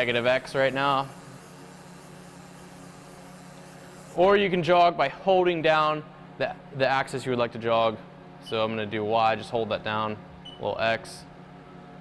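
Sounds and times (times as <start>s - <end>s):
milling machine humming: 0.0s - 4.5s.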